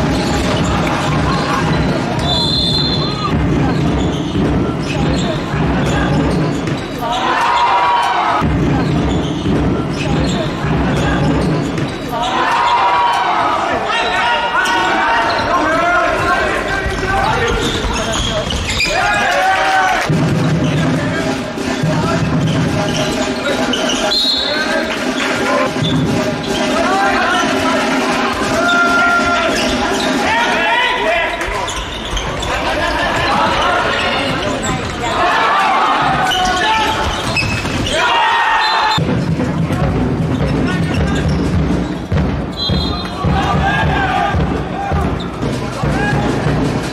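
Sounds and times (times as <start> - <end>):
voices echoing: 0.0 - 46.9
ball bouncing on court: 0.1 - 7.0, 16.2 - 19.1, 36.0 - 37.9
shoe squeaks on floor: 0.1 - 7.8, 8.7 - 13.0, 16.5 - 19.3, 22.0 - 27.8, 28.6 - 30.5, 31.2 - 35.2, 36.0 - 39.0, 40.3 - 43.2
players' footsteps: 14.7 - 24.0.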